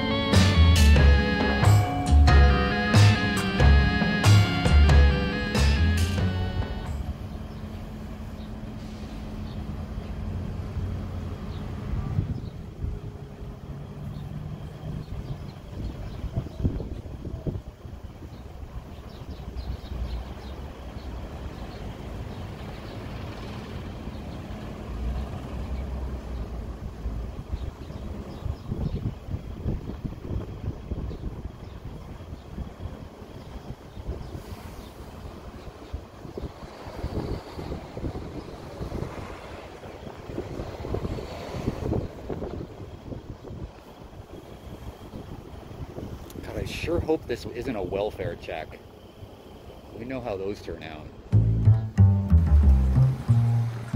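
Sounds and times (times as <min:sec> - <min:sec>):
vehicles passing: 0:00.0 - 0:53.9
wind buffeting microphone: 0:11.8 - 0:13.2, 0:14.9 - 0:19.6, 0:26.8 - 0:47.9.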